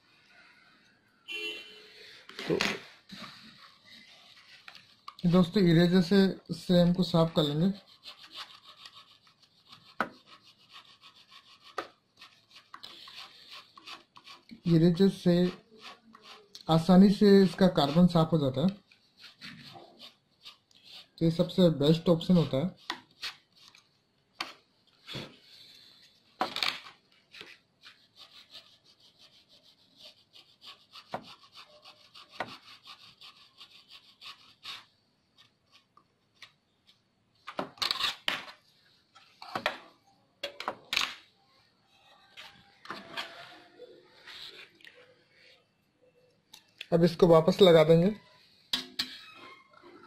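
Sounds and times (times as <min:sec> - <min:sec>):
eraser rubbing on metal contacts: 0:06.8 - 0:23.8, 0:27.5 - 0:35.9.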